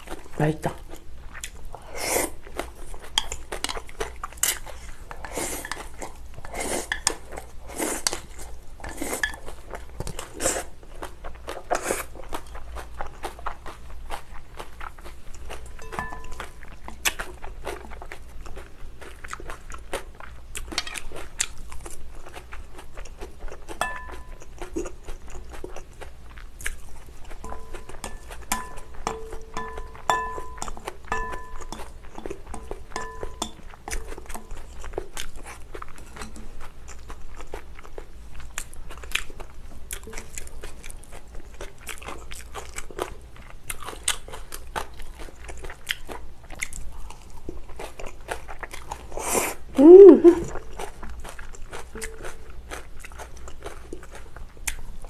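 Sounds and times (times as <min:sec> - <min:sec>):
chewing with crunchy bites: 0:00.0 - 0:55.0
chopsticks tapping a glass bowl: 0:15.8 - 0:16.4, 0:23.8 - 0:24.4, 0:27.5 - 0:31.9, 0:32.5 - 0:33.6.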